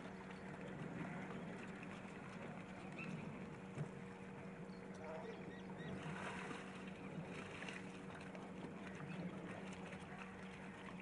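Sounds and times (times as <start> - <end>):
outdoor noise: 0.0 - 11.0
steady low hum: 0.0 - 11.0.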